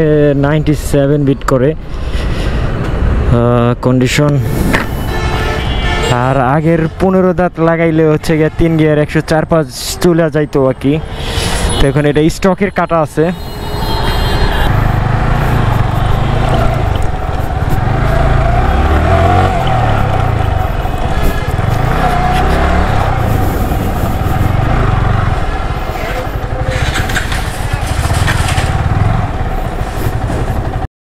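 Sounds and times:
motorcycle engine running: 14.0s - 30.9s.

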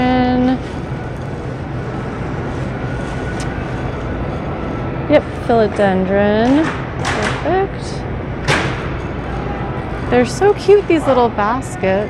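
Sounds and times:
grocery store hum and hiss: 0.0s - 12.0s.

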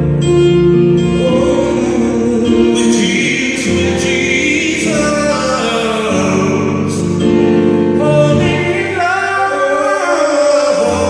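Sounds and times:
electronic keyboard chords: 0.0s - 11.0s.

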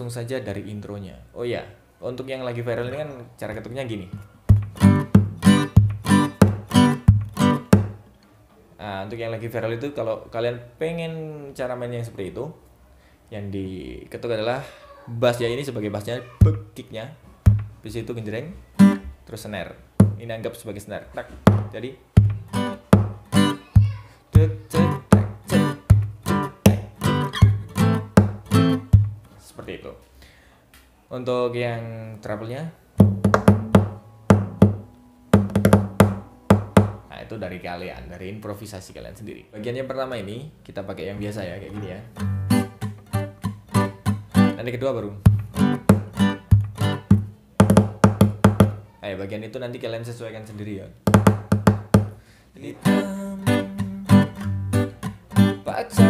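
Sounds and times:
percussive acoustic guitar: 4.2s - 8.0s, 17.4s - 17.8s, 18.8s - 19.1s, 19.9s - 20.2s, 21.4s - 29.3s, 33.0s - 37.1s, 42.1s - 44.6s, 45.2s - 48.8s, 51.0s - 52.2s, 52.8s - 56.0s
muted percussive guitar strokes: 4.5s - 7.9s, 22.2s - 29.2s, 45.3s - 47.8s.

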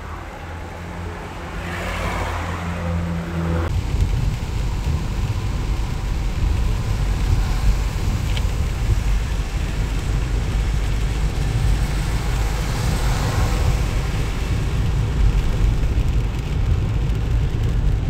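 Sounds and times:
car driving on wet road: 0.0s - 18.0s.

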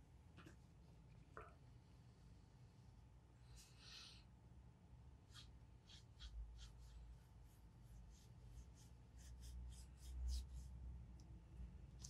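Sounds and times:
cotton swab rubbing on paper: 5.2s - 10.8s.

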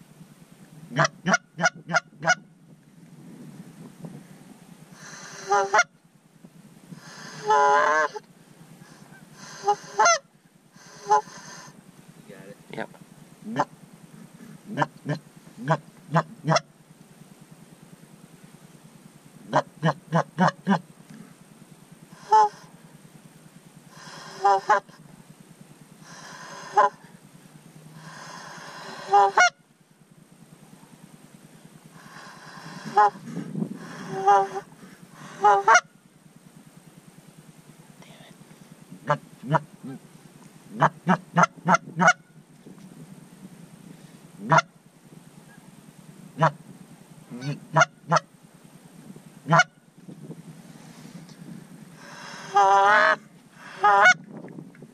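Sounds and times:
geese honking: 0.9s - 2.5s, 5.0s - 6.0s, 7.0s - 11.7s, 13.4s - 16.7s, 19.5s - 20.8s, 22.2s - 22.7s, 23.9s - 25.0s, 26.0s - 27.1s, 28.0s - 29.6s, 32.0s - 36.0s, 39.0s - 40.0s, 40.7s - 42.4s, 44.4s - 44.7s, 46.4s - 46.6s, 47.3s - 48.3s, 49.5s - 49.8s, 52.0s - 54.2s.

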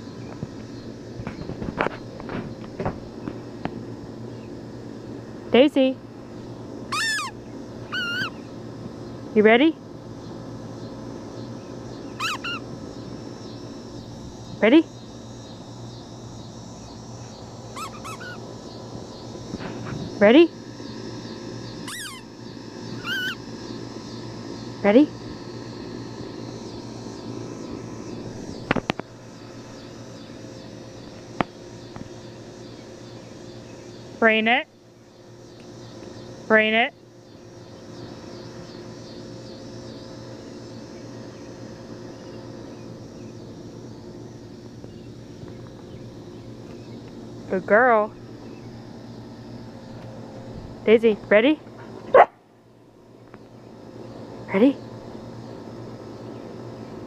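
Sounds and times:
high chirps: 6.9s - 8.4s, 12.2s - 12.6s, 17.8s - 18.4s, 21.8s - 22.3s
puppy whining: 6.9s - 8.4s, 12.2s - 12.6s, 17.7s - 18.4s, 21.9s - 22.3s, 23.0s - 23.4s.

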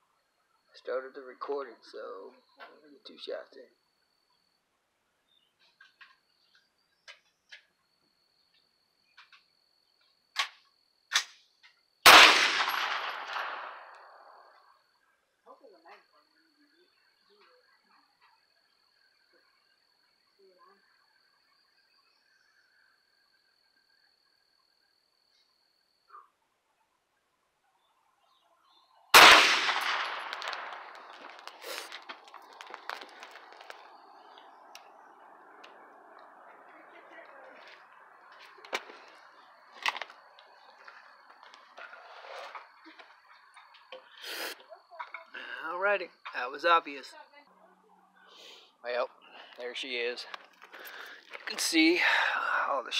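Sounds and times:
gunshot with echo: 12.1s - 14.2s, 29.2s - 31.2s.

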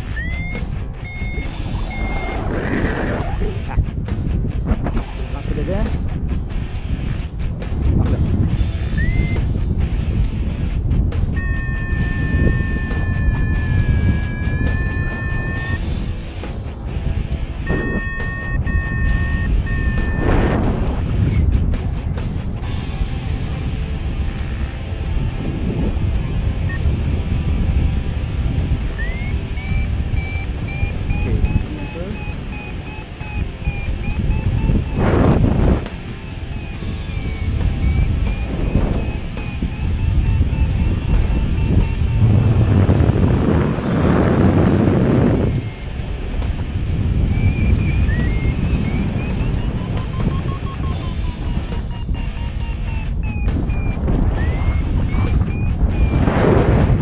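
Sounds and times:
variometer beeping: 0.0s - 2.8s, 8.7s - 9.5s, 11.3s - 15.8s, 17.6s - 21.5s, 24.3s - 24.9s, 26.6s - 26.9s, 28.8s - 43.5s, 44.7s - 46.2s, 47.2s - 57.0s
wind rushing over microphone: 0.0s - 57.0s.

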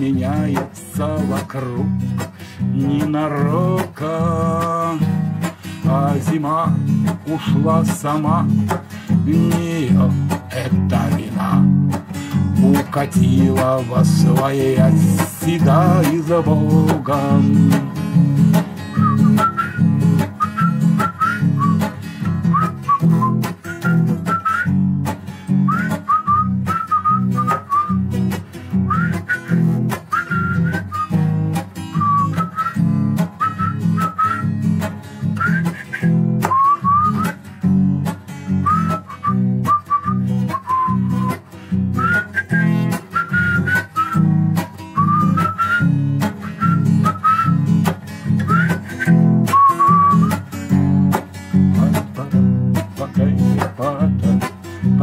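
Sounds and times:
strummed acoustic guitar: 0.0s - 55.0s
whistled melody: 12.6s - 37.8s, 38.5s - 52.6s.

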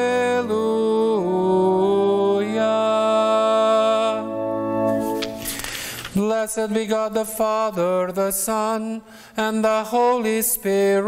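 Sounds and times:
church organ chords: 0.0s - 5.9s.

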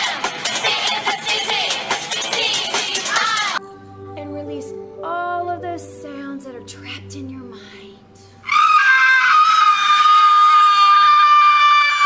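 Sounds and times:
high-pitched human scream: 8.4s - 12.0s.

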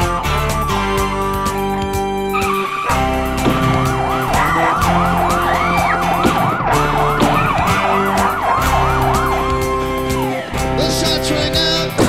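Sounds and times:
rock band playing: 0.0s - 12.0s
siren yelping: 0.7s - 10.9s.

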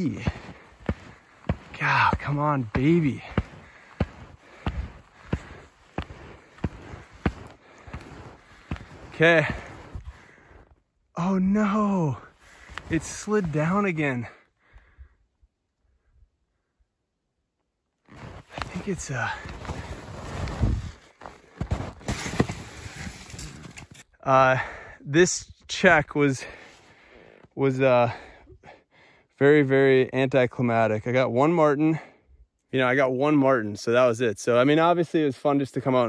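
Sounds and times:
skis crunching through snow: 0.0s - 10.6s, 18.1s - 23.9s.

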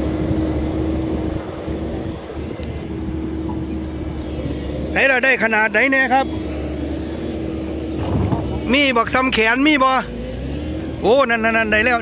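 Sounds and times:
motor engine running: 0.0s - 12.0s.

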